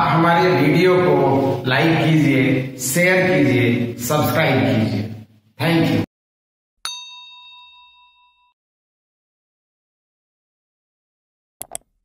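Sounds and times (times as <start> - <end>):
bell ding sound effect: 6.8 - 8.6.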